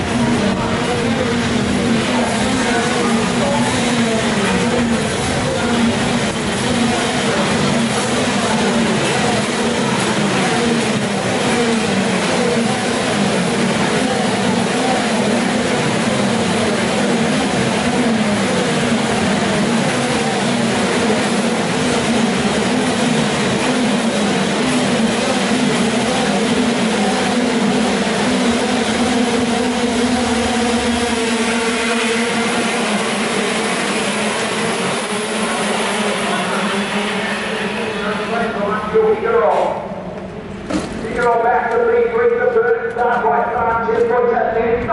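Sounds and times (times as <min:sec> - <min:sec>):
kart engine revving: 0:00.0 - 0:41.6
kart engines droning: 0:00.0 - 0:44.9.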